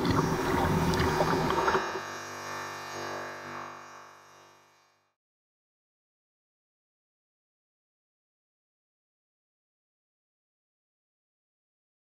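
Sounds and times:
water splashing against kayak hull: 0.0 - 2.1.

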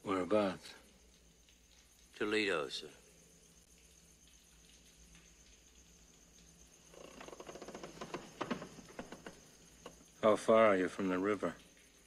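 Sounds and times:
faint steady hum: 0.0 - 12.0
water splashing and dripping: 0.0 - 12.0.

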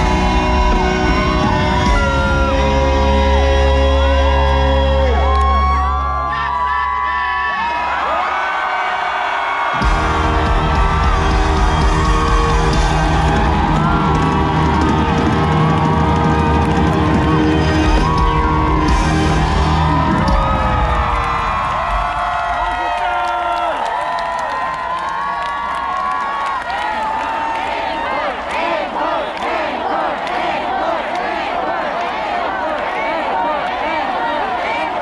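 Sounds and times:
live concert music: 0.0 - 26.2
crowd cheering: 0.0 - 35.0.

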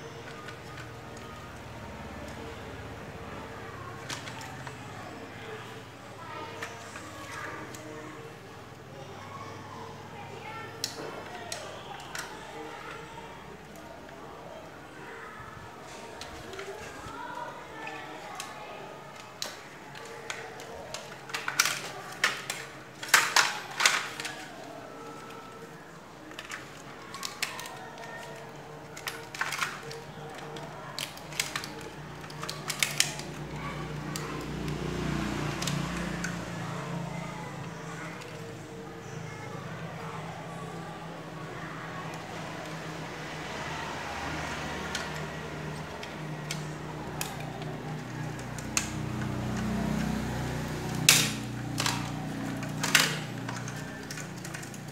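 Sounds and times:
plastic parts clicking and snapping: 0.0 - 5.6, 10.5 - 14.2, 15.8 - 39.2, 40.5 - 54.9.

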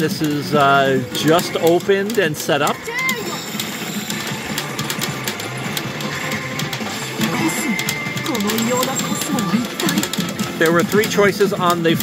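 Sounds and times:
pachinko game music and effects: 0.0 - 12.0
steel balls clicking through pins: 0.0 - 12.0.

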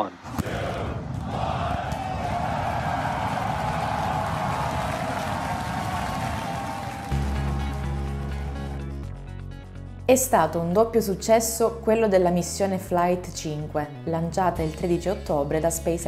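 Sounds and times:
background music with low chords: 6.8 - 16.0.

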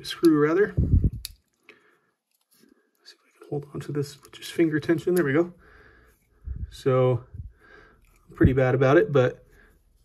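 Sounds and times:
small clicks of handling parts: 1.1 - 3.4, 8.0 - 8.4.

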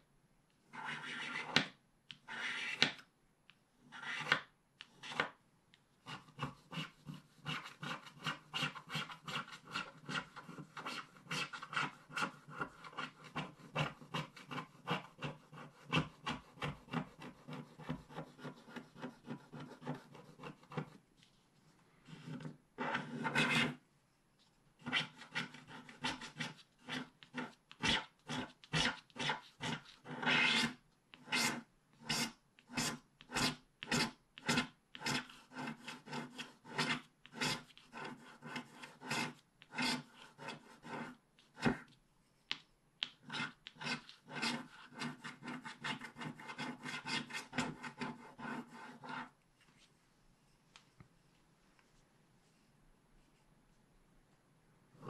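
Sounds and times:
stylus scraping scratch card: 0.8 - 3.0, 3.9 - 4.4, 6.0 - 21.0, 22.1 - 23.8, 24.8 - 41.8, 43.0 - 49.3.

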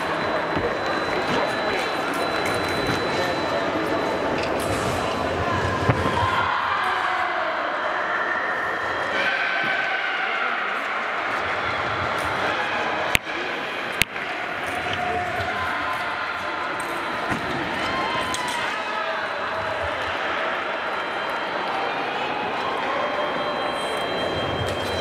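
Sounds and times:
indistinct chatter in echoing hall: 0.0 - 25.0.

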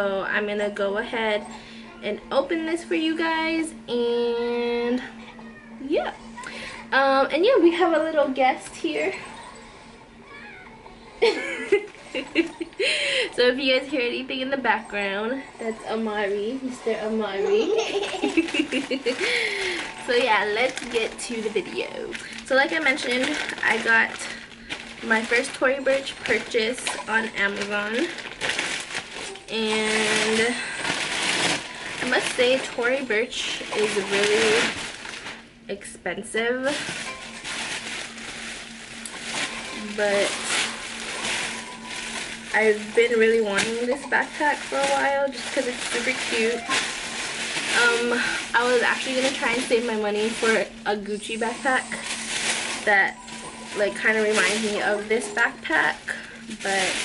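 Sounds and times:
low room hum: 0.0 - 57.0
plastic packaging crinkling: 17.4 - 35.6, 36.6 - 57.0.

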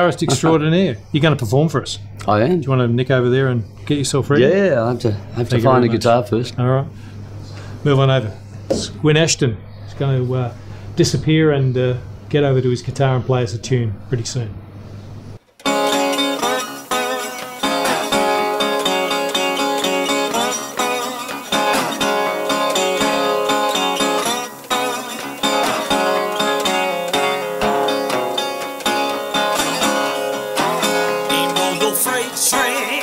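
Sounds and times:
resonator guitar playing: 15.6 - 33.0.

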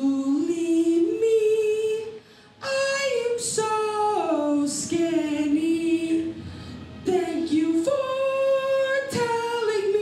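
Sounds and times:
woman singing unaccompanied: 0.0 - 6.4, 7.0 - 10.0.

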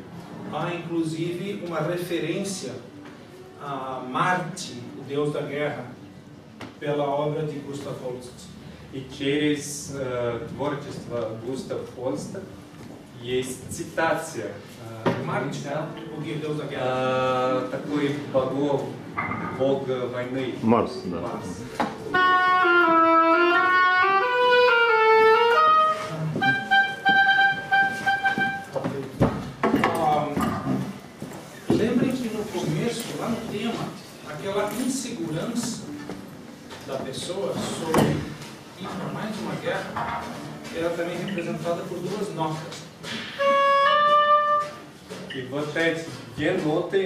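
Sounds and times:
solo oboe playing: 22.0 - 28.8, 43.4 - 45.0.

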